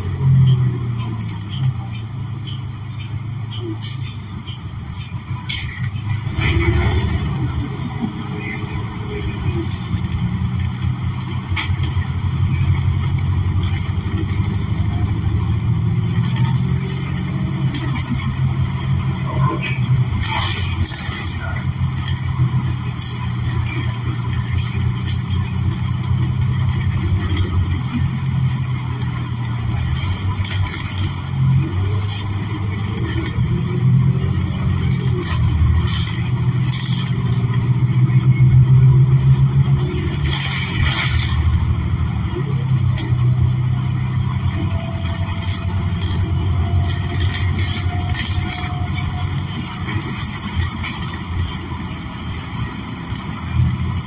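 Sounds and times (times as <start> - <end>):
bus engine low hum: 0.0 - 54.0.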